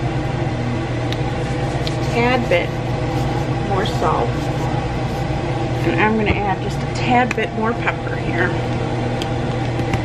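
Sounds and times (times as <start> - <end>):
range hood fan humming: 0.0 - 10.0
person speaking: 1.8 - 7.1.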